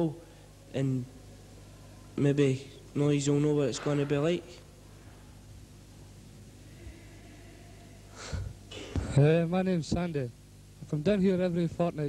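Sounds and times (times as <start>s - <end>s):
low electrical hum: 0.0s - 12.0s
man speaking: 2.2s - 4.7s
man inhaling sharply: 8.1s - 9.0s.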